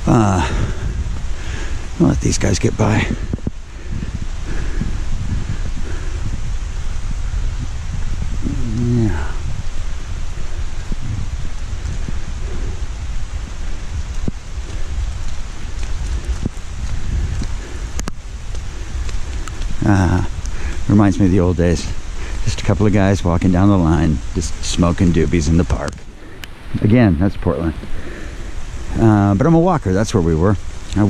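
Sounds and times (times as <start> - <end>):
low microphone rumble: 0.0 - 29.6
light rain in woods: 0.0 - 31.0
voice murmuring: 8.4 - 9.5.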